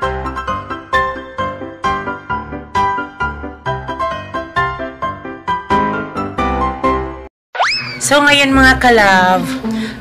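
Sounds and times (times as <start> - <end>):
piano-like background music: 0.0 - 7.3
rising glide sound effect: 7.6 - 8.1.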